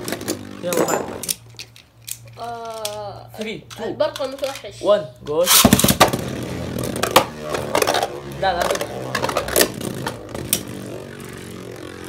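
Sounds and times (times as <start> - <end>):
spinning tops launched whirring: 5.4 - 12.0.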